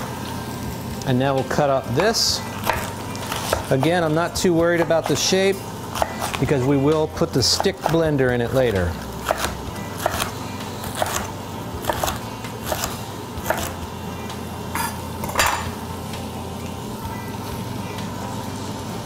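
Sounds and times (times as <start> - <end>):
food sizzling in oil: 0.0 - 19.0
knife chopping on cutting board: 2.0 - 4.0, 5.9 - 6.4, 7.4 - 8.0, 9.2 - 13.8.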